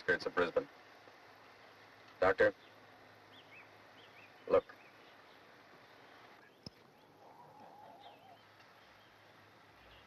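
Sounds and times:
steady background hiss: 0.0 - 10.0
birds chirping faintly: 0.2 - 10.0.

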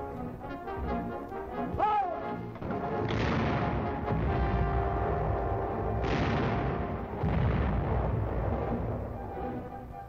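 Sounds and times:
orchestral music with brass: 0.0 - 10.0
shellfire: 2.6 - 9.8.

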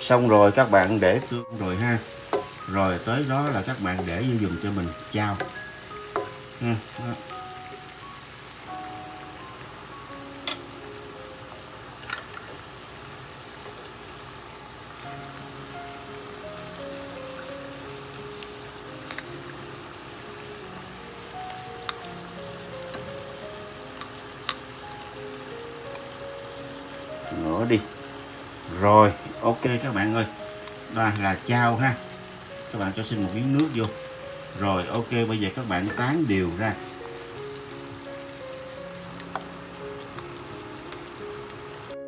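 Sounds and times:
sauce sizzling in a wok: 0.0 - 42.0
soft background music: 0.0 - 42.0
utensil tapping pan: 0.6 - 7.0, 10.4 - 10.7, 12.0 - 12.6, 18.4 - 19.5, 33.1 - 36.4, 39.2 - 39.6.

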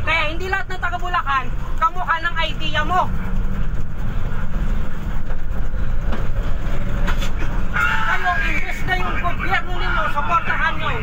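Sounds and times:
low rumble of passenger vehicle: 0.0 - 11.0.

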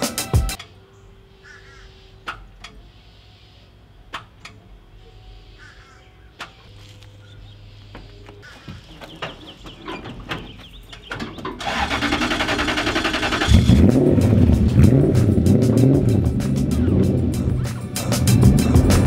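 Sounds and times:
music: 0.0 - 0.6, 13.9 - 19.0
truck engine starting and revving: 9.0 - 19.0.

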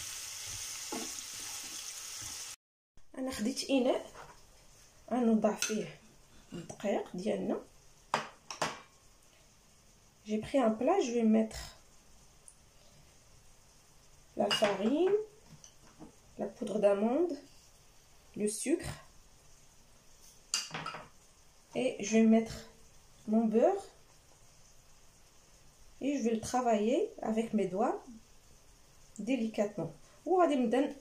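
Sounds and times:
ceramic plates clinking on table: 20.6 - 21.1.

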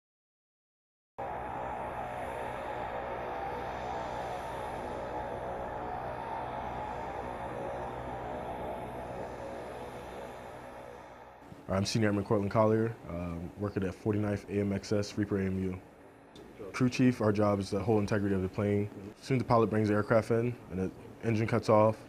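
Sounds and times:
propeller engine droning buzz: 1.2 - 19.2.

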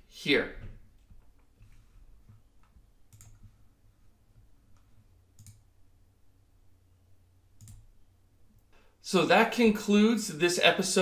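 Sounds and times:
low room hum: 0.0 - 10.8
computer mouse clicks: 1.4 - 3.6, 4.7 - 5.6, 7.6 - 7.9.

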